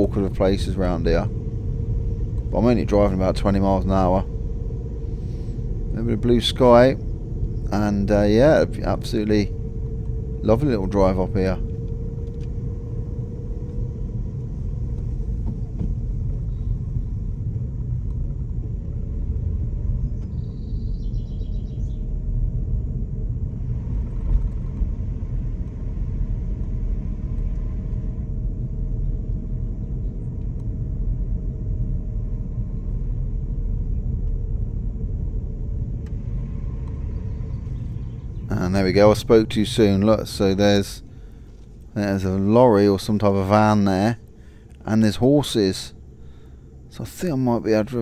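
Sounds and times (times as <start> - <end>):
car engine and tyres rumbling: 0.0 - 48.0
faint steady hum: 0.0 - 48.0.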